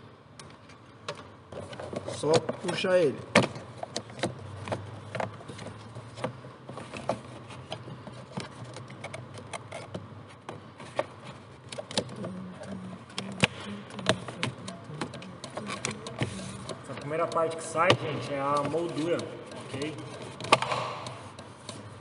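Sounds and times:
plastic trim clicking and creaking: 0:03.4 - 0:21.8.

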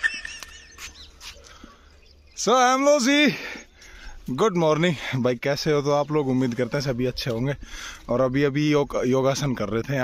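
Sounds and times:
animal chirping: 0:00.0 - 0:01.6.

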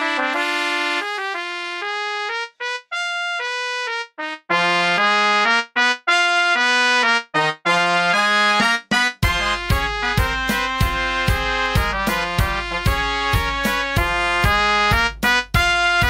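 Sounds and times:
brass ensemble playing: 0:00.0 - 0:16.0.

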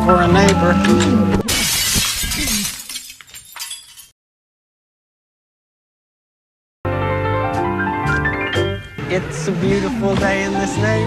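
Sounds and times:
motors whining down: 0:09.0 - 0:11.0.

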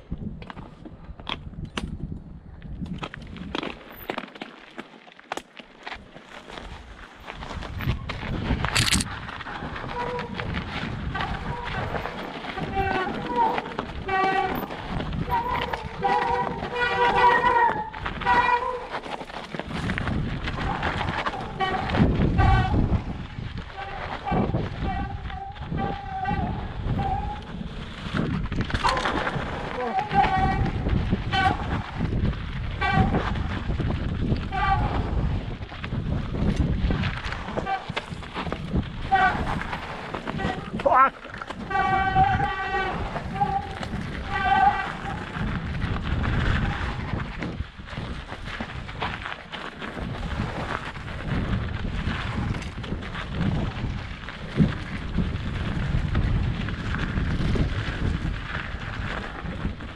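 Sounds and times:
bike tyre rumble: 0:00.0 - 0:59.9
brakes squealing: 0:08.8 - 0:19.4, 0:28.8 - 0:31.8, 0:37.4 - 0:45.5.

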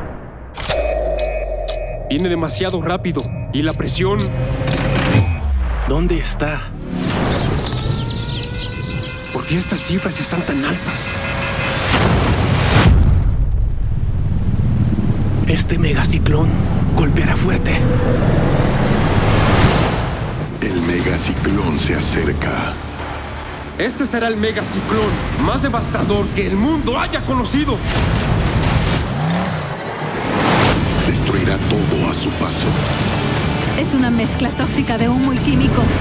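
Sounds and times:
low drone: 0:00.0 - 0:08.2, 0:13.6 - 0:20.6
storm wind rushing: 0:12.2 - 0:20.6
deep continuous rumble: 0:12.8 - 0:20.6.

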